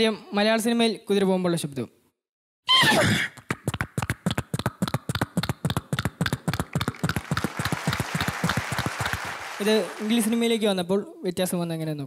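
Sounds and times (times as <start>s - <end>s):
rapid mouth clicks: 3.4s - 9.1s
person speaking: 9.6s - 12.0s.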